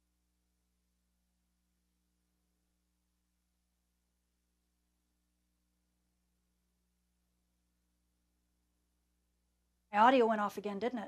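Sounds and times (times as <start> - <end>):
faint steady hum: 0.0 - 11.0
woman speaking: 10.0 - 11.0.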